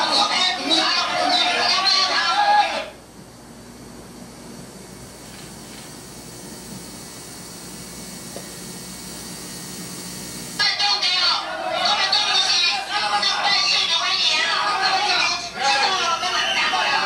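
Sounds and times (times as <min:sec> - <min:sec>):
loud voices: 0:00.0 - 0:03.0, 0:10.6 - 0:17.0
tape hiss: 0:04.1 - 0:10.8
faint crowd noise: 0:10.6 - 0:17.0.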